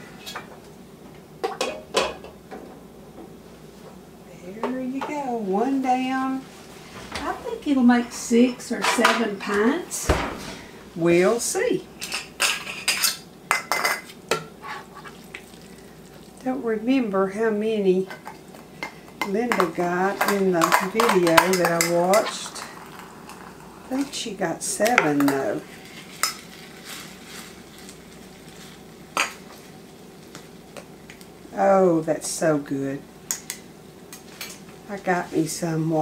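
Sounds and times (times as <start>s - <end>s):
kitchenware handling: 8.6s - 10.7s
spoon scraping metal pot: 12.0s - 15.2s.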